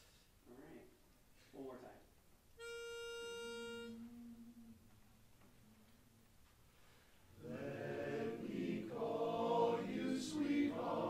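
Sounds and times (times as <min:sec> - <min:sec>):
pitch pipe note: 0:02.6 - 0:04.9
singers humming: 0:03.5 - 0:06.3, 0:07.4 - 0:11.0.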